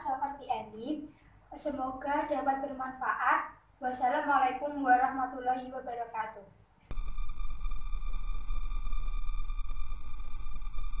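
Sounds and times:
deep synth bass: 6.9s - 11.0s
sustained synthesizer tones: 6.9s - 11.0s.

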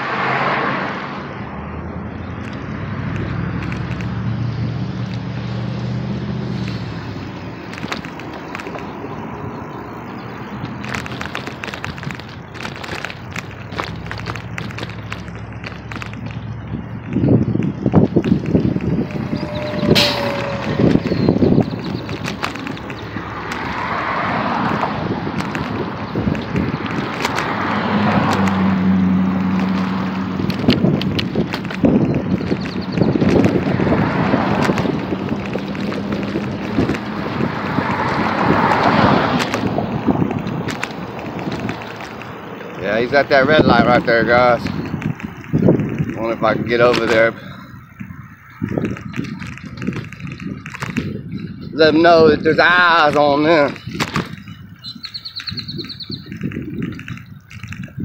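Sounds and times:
cars passing: 0.0s - 58.0s
wind buffeting microphone: 1.2s - 58.0s.

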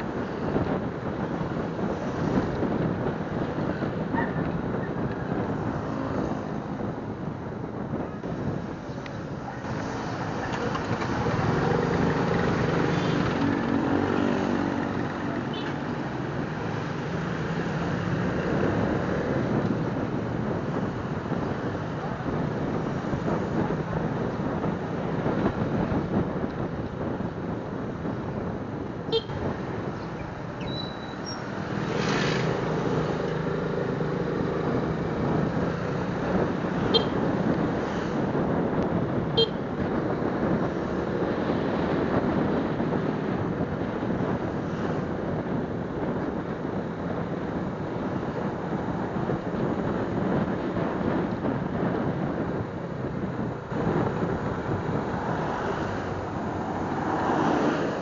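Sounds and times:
wind rush on microphone: 0.0s - 58.0s.

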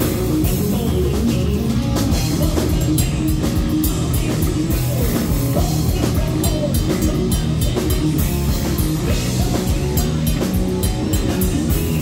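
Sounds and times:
heavy metal band playing: 0.0s - 12.0s.

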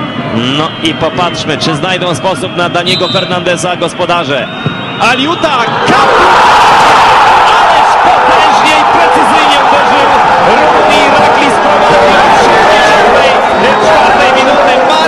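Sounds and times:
stadium crowd cheering: 4.2s - 15.0s.

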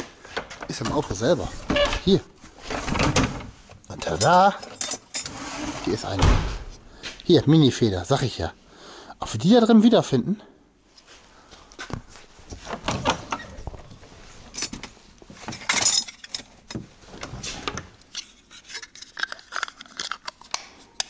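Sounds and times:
metal tools clinking and clattering: 4.1s - 5.4s, 14.5s - 16.8s.

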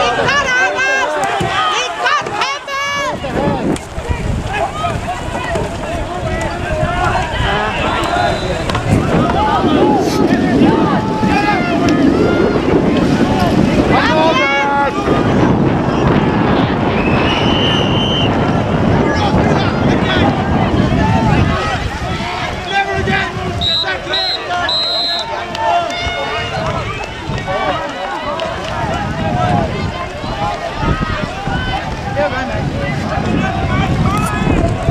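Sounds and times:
youth voices shouting: 0.0s - 18.4s, 19.1s - 34.9s
wind buffeting microphone: 0.0s - 34.9s
high whistle blast: 23.6s - 25.3s.

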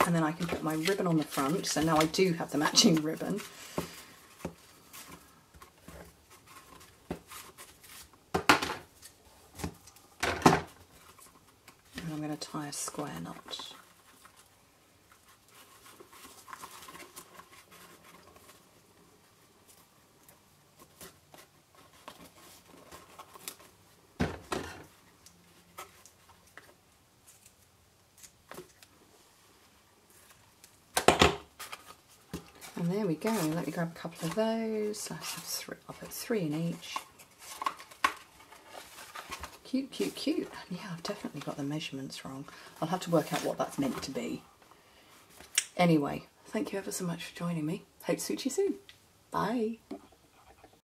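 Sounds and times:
light rustling of cards: 0.0s - 8.2s, 24.7s - 45.6s.

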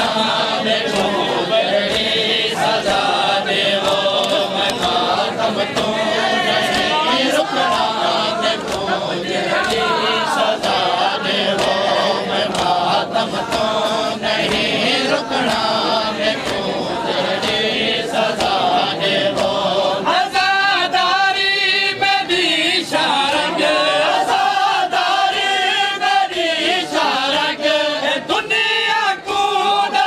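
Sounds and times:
men chanting in unison: 0.0s - 30.0s
hands slapping bare chests: 3.8s - 5.2s, 7.6s - 10.0s, 11.5s - 14.8s, 15.4s - 17.7s.

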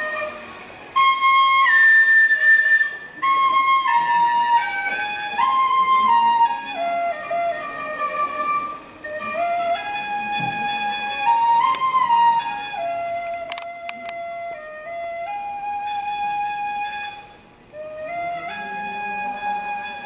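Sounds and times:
tin whistle slow melody: 0.0s - 20.0s.

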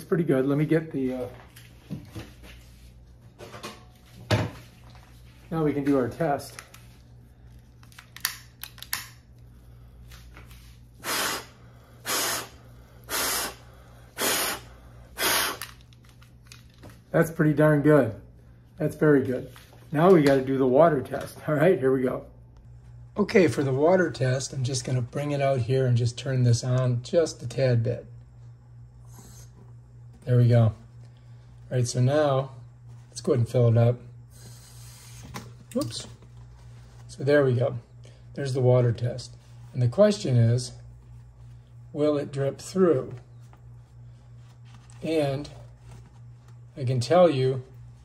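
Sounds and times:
steady low hum: 0.0s - 48.0s
breaths blown through face mask: 11.0s - 15.8s.

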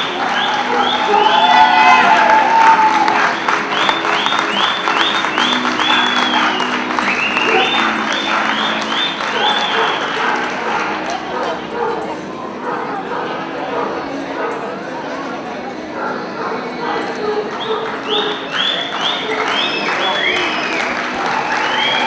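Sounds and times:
audience applauding: 0.0s - 12.1s, 17.0s - 22.0s.

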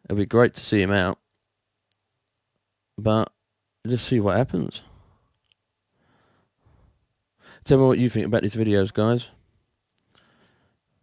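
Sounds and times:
man speaking: 0.0s - 1.2s, 3.0s - 5.0s, 7.6s - 9.4s.

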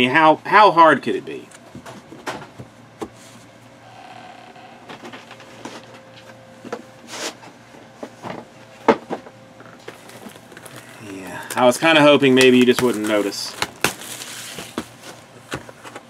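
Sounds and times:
faint steady hum: 0.0s - 16.0s
objects being handled: 9.6s - 16.0s.

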